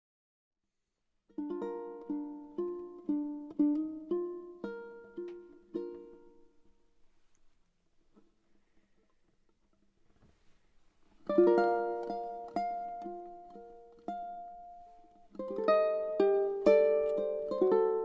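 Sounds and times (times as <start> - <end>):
ukulele plucked notes and chords: 1.3 - 6.8, 11.2 - 18.0.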